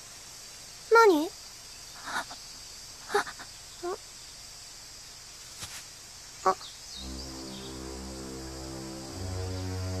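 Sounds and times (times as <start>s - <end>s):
faint high hiss: 0.0s - 10.0s
low synthesizer chord: 7.0s - 10.0s.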